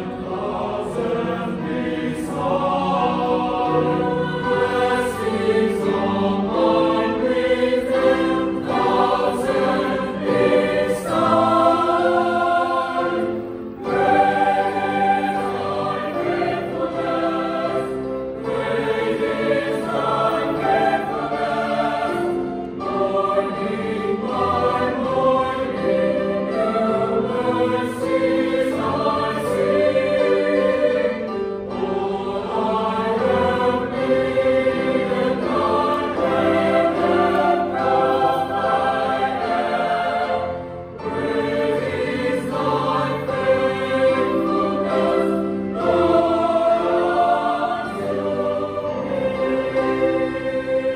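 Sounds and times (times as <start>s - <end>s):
mixed choir singing in harmony: 0.0s - 50.9s.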